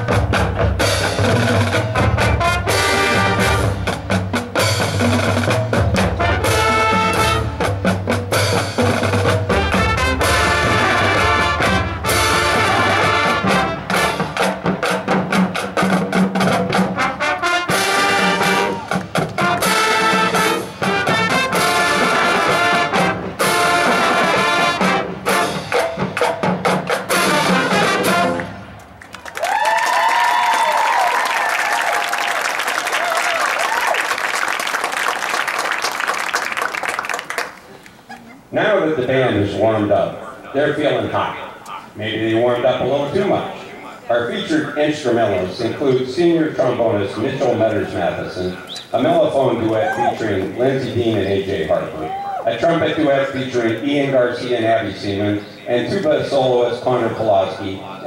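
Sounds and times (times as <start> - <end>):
marching band playing jazzy tune: 0.0 - 29.6, 32.1 - 58.0
audience cheering: 18.2 - 19.8, 29.1 - 37.8, 49.6 - 50.6, 51.8 - 52.7
audience applause: 29.0 - 38.3.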